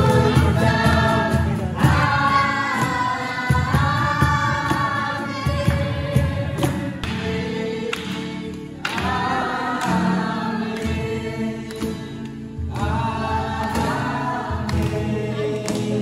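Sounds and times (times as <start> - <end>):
group singing a worship song: 0.0 - 16.0.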